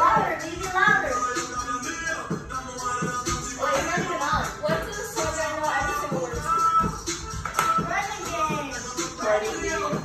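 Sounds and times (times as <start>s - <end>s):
backing music: 0.0s - 10.0s.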